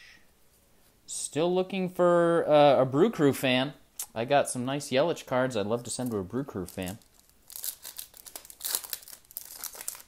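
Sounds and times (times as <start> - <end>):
foil wrapper crinkling: 6.0 - 10.0.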